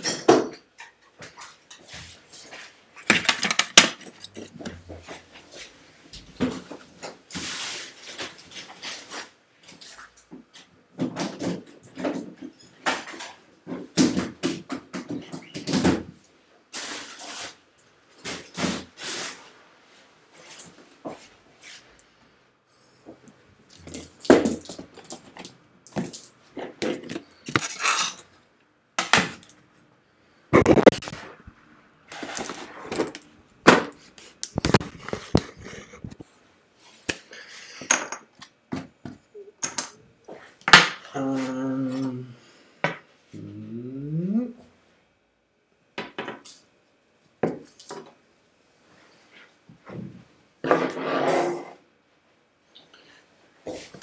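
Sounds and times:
tools clattering on workbench: 0.0 - 1.0, 26.9 - 28.3.

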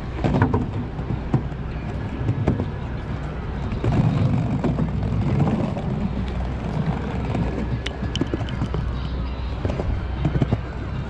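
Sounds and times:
skateboard wheels rolling on planks: 0.0 - 11.0
wheels clicking over plank joints: 0.0 - 11.0.

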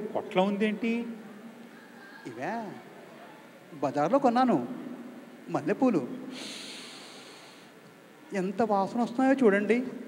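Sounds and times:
man sniffing: 6.3 - 7.7.

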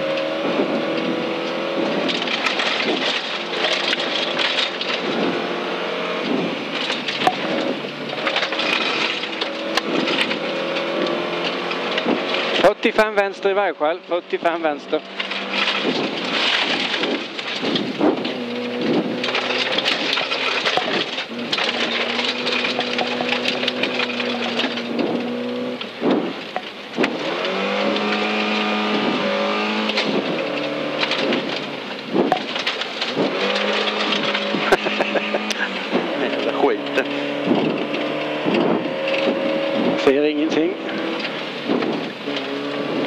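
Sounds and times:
gravel clattering against tyres: 0.0 - 43.0
rally car engine accelerating: 0.0 - 43.0.

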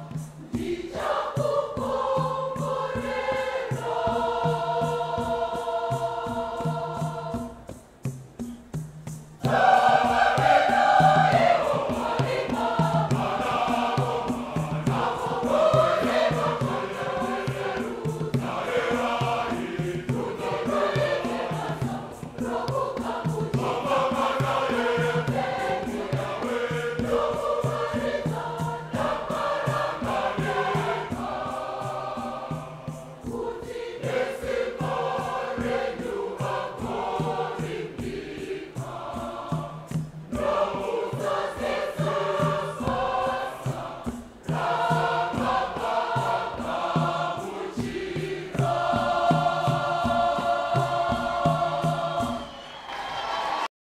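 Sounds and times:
mixed choir singing a hymn: 0.0 - 53.7.

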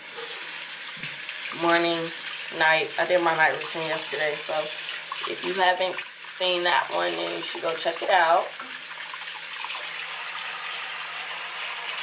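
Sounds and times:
tap running into sink: 0.2 - 1.3.

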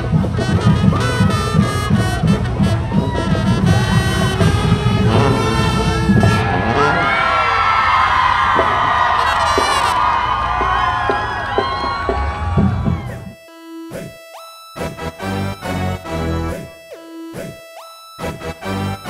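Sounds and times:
brass music with strong beat: 0.0 - 7.6, 8.7 - 19.0
crowd cheering and screaming: 2.5 - 4.4, 5.0 - 13.4.

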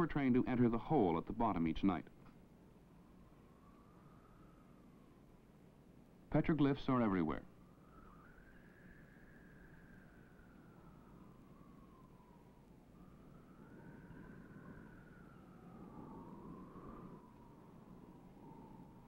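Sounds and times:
faint wavering high tone: 13.0 - 19.0.

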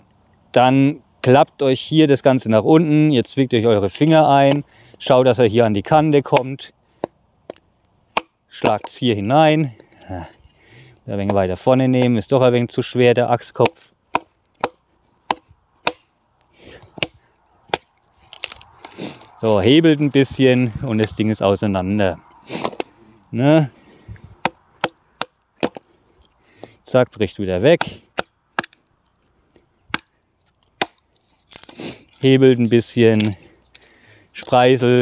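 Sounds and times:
hatchet chopping kindling: 4.0 - 4.7, 5.6 - 21.3, 22.2 - 23.0, 24.1 - 26.8, 27.6 - 28.9, 29.9 - 34.6
hatchet knocking on chopping block: 13.6 - 16.0.

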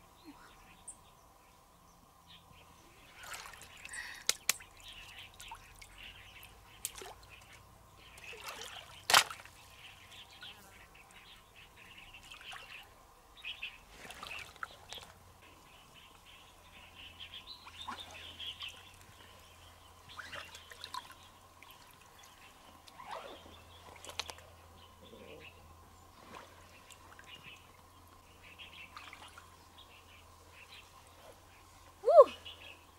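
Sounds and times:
birds chirping: 0.0 - 32.9
stream water splashing: 3.0 - 10.4, 12.0 - 12.9, 13.9 - 15.8, 20.1 - 24.6, 26.0 - 29.9.

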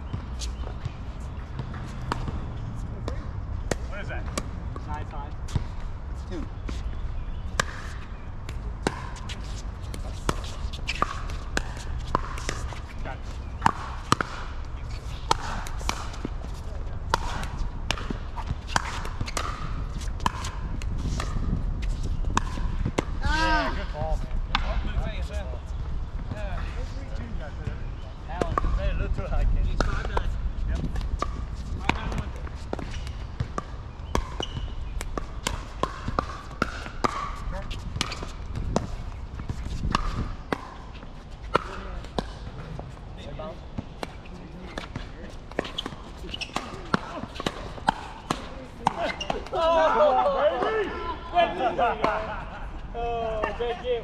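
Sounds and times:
ball bouncing on hard court: 0.1 - 5.8, 7.5 - 25.0, 28.3 - 42.5, 43.8 - 49.5
players shouting: 48.8 - 53.8.

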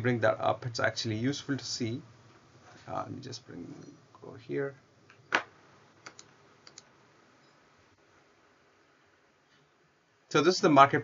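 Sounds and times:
computer keyboard clicks: 6.0 - 6.9.

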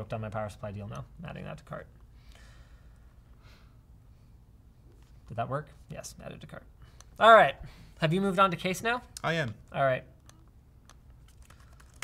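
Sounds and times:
faint laptop keyboard typing: 10.2 - 12.0.

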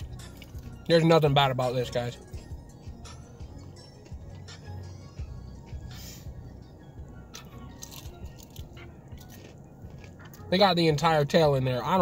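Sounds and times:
person chewing crunchy food: 0.0 - 0.8, 7.3 - 10.5
faint background music: 0.0 - 12.0.

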